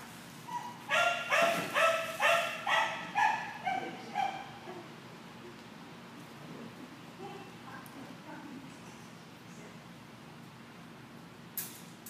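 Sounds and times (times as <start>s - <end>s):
dog yipping barks: 0.5s - 4.5s.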